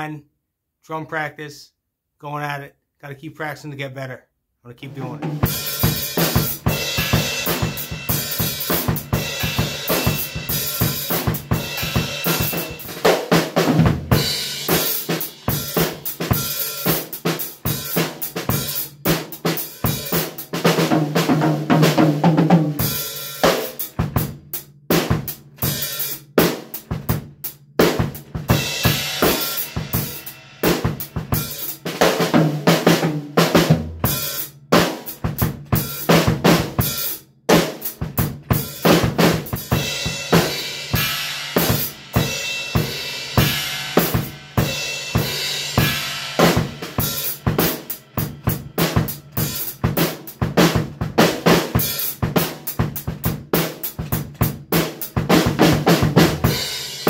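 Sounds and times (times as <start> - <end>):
drum kit playing: 4.7 - 57.0.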